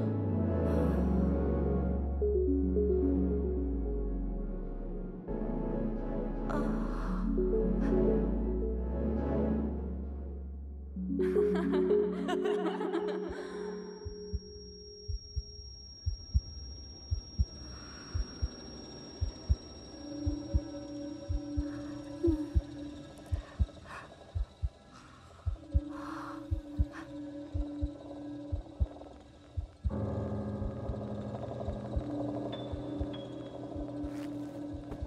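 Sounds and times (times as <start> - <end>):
low droning film score: 0.0 - 35.0
heartbeat thumping: 14.0 - 16.5, 17.1 - 18.6, 19.2 - 19.6, 20.2 - 20.7, 21.3 - 24.8, 25.4 - 29.0, 29.6 - 30.0, 30.6 - 31.1, 31.7 - 35.0.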